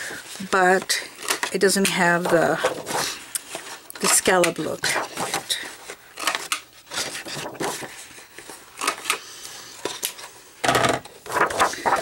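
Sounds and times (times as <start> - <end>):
paper sliding and rustling: 1.2 - 9.2, 11.1 - 12.0.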